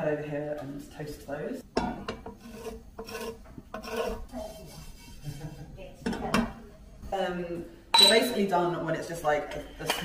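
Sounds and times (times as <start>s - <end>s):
wooden spatula scraping frying pan: 1.9s - 5.8s.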